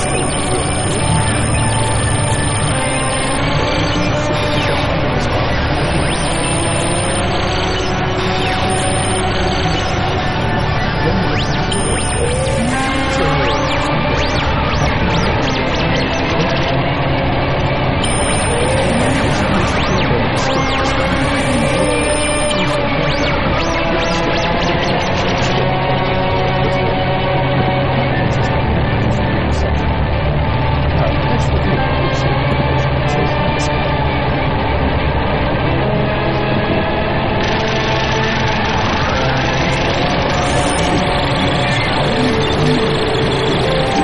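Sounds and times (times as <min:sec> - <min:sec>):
noise drone with low rumble: 0:00.0 - 0:44.0.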